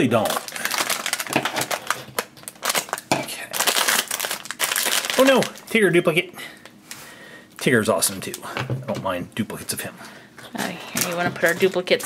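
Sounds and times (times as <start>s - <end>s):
foil bag crinkling: 0.0s - 6.0s, 10.9s - 12.0s.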